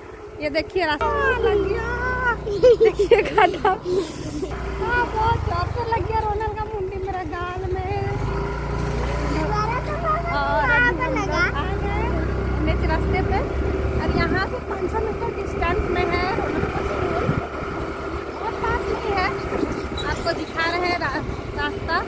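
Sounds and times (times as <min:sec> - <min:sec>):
motorcycle engine running: 0:00.0 - 0:22.0
voices talking: 0:00.0 - 0:22.0
wind on microphone: 0:15.8 - 0:17.7.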